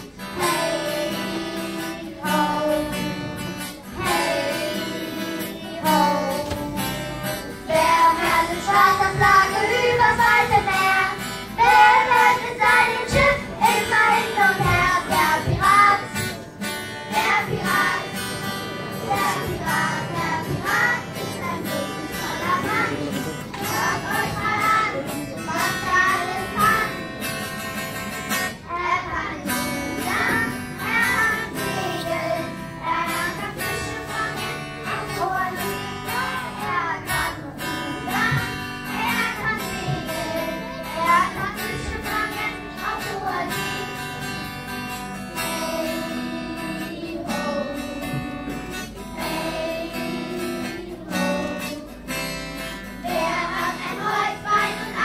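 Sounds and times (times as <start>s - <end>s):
children singing: 0.0s - 55.0s
instrumental music: 0.0s - 55.0s.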